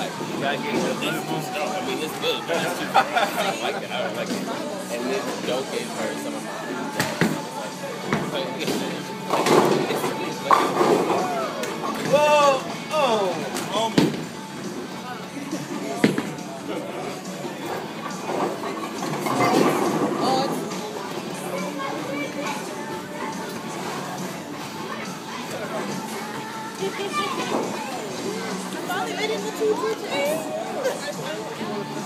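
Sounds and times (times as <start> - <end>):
background music: 0.0 - 32.0.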